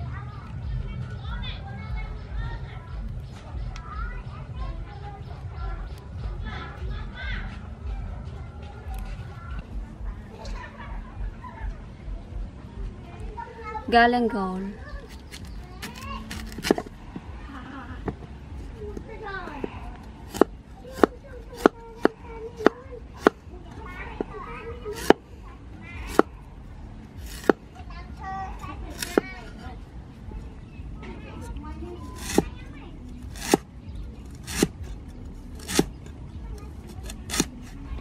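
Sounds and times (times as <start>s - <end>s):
cleaver chopping on wooden block: 15.4s - 16.9s, 20.3s - 23.4s, 24.9s - 25.2s, 26.1s - 26.3s, 27.2s - 27.6s, 28.9s - 29.3s, 32.2s - 32.5s, 33.3s - 33.7s, 34.3s - 34.9s, 35.6s - 36.0s, 36.9s - 37.8s.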